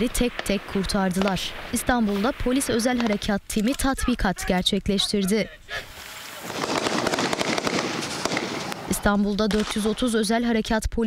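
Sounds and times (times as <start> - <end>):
rapid gunfire: 6.4 - 9.9.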